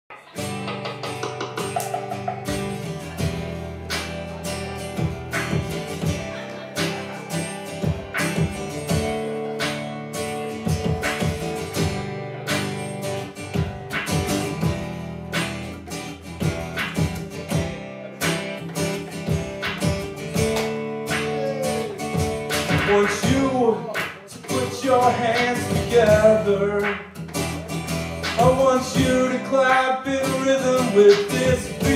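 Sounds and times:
acoustic guitar strumming: 0.1s - 31.9s
electronic hand percussion beat: 0.1s - 31.9s.

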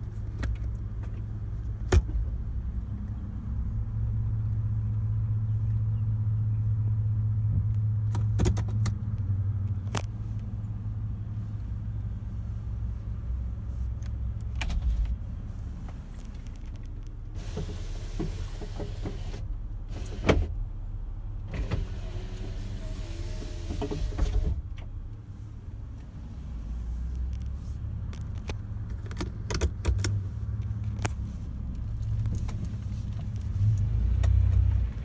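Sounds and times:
car engine low rumble: 0.0s - 35.0s.

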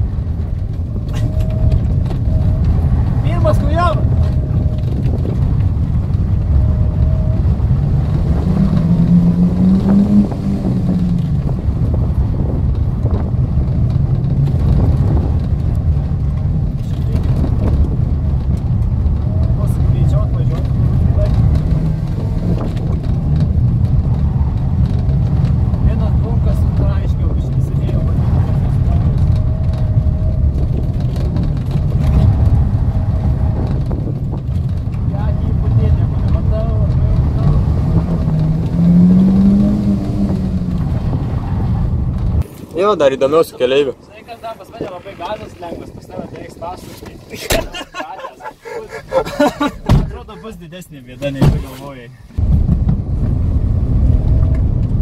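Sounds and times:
car engine revving: 0.0s - 42.5s.

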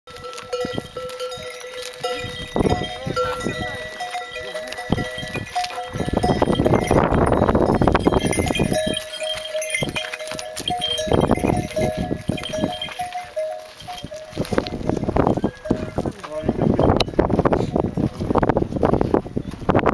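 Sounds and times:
animal bells clanking: 0.1s - 18.3s
hooves knocking on rocky trail: 0.1s - 19.9s.

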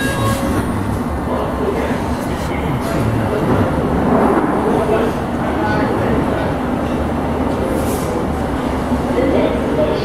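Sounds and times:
train equipment humming: 0.0s - 9.9s.

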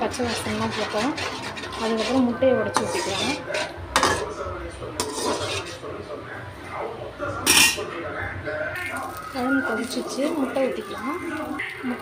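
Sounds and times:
spatula scraping through gravy: 0.0s - 4.4s, 5.0s - 5.9s
spatula clattering against pan: 0.2s - 4.4s, 5.0s - 5.8s.

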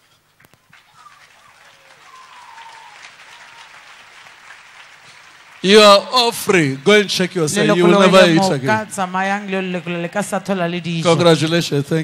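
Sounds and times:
crowd applauding: 0.4s - 11.8s.

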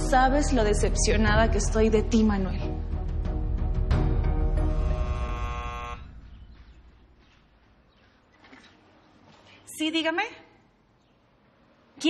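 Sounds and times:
intercom door buzzer: 4.6s - 6.2s.

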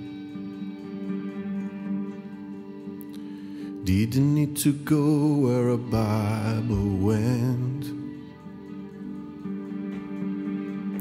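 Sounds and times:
acoustic guitar: 0.0s - 11.0s
keyboards: 0.0s - 11.0s
violin: 0.0s - 11.0s.

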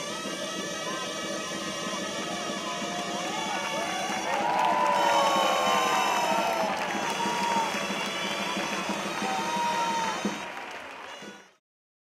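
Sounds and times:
shawms playing a melody: 0.0s - 10.6s
crowd cheering: 0.8s - 11.6s.

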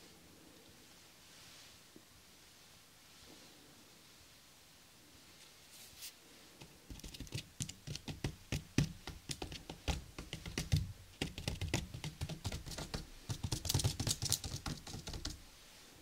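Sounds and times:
fingers tapping on a tabletop: 6.9s - 15.4s.

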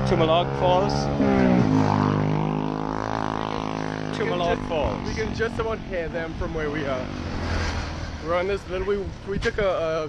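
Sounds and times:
small motorbike engine passing: 0.0s - 8.8s.

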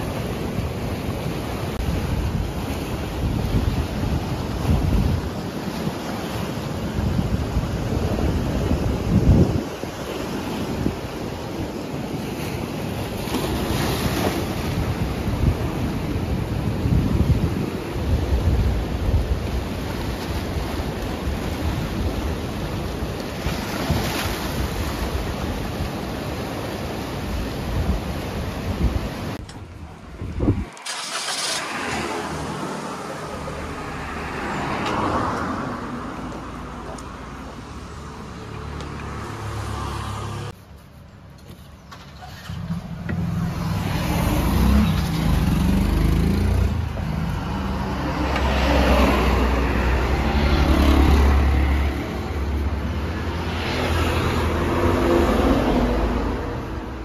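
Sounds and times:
surf washing over rocks: 0.0s - 40.6s, 42.5s - 57.0s
vehicles passing: 29.4s - 57.0s.

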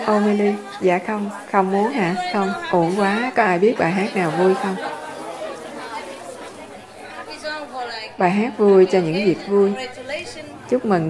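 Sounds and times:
low chatter of audience: 0.0s - 11.0s.

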